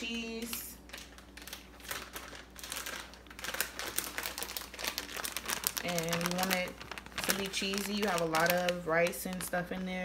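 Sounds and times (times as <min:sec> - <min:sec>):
plastic bag crinkling: 0:00.1 - 0:10.0.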